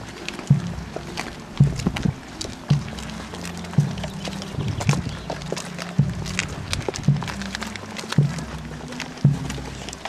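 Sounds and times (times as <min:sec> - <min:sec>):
band playing slow march: 0:00.0 - 0:10.0
bass drum beat: 0:00.0 - 0:10.0
crowd footsteps: 0:00.0 - 0:10.0.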